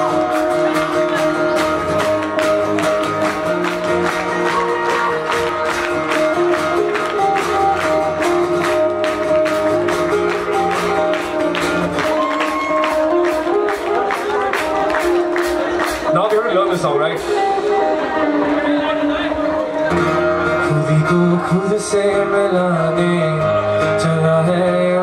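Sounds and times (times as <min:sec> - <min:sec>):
drums keeping steady beat: 0:00.0 - 0:19.0
bass guitar: 0:00.0 - 0:25.0
sustained guitar notes: 0:00.0 - 0:25.0.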